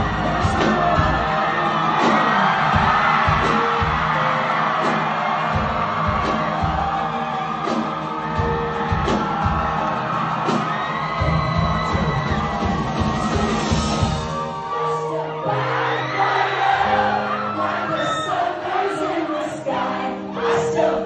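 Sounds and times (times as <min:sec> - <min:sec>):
person singing: 0:00.0 - 0:03.8, 0:14.0 - 0:21.0
steady drum beat: 0:00.0 - 0:14.5
pop-rock song through loudspeakers: 0:00.0 - 0:21.0.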